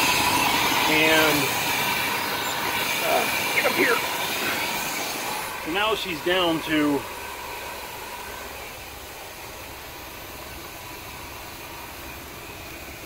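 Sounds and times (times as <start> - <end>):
engine idling: 0.0 - 13.0.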